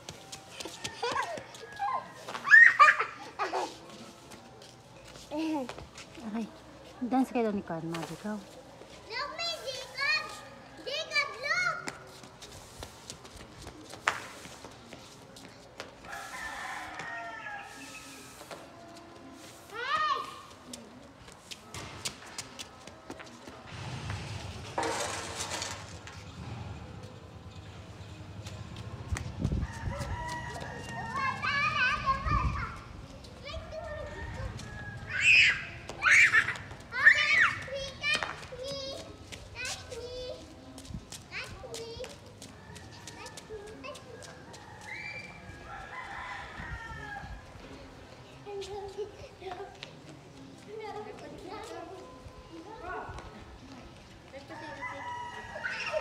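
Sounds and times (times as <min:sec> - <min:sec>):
children shouting and squealing: 0:00.6 - 0:04.0, 0:29.8 - 0:40.6, 0:42.8 - 0:45.6, 0:54.5 - 0:56.0
rooster crowing: 0:16.1 - 0:18.1, 0:29.6 - 0:31.4, 0:44.4 - 0:47.4, 0:54.6 - 0:56.0.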